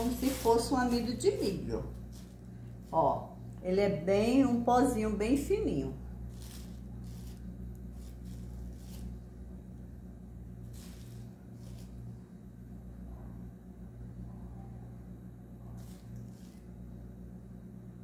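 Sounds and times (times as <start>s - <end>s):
plastic bag rustling: 0.0s - 3.3s, 6.2s - 9.4s, 10.6s - 12.1s
steady low hum: 0.0s - 18.0s
metal spoon scraping starch: 6.3s - 9.3s, 10.7s - 12.0s.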